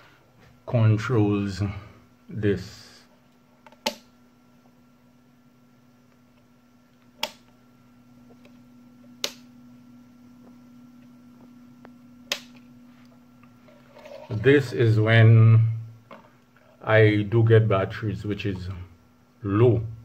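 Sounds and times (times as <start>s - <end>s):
faint steady hum: 0.0s - 20.0s
rocker switch clicks: 3.7s - 4.1s, 7.2s - 7.5s, 9.2s - 9.5s, 12.2s - 12.6s.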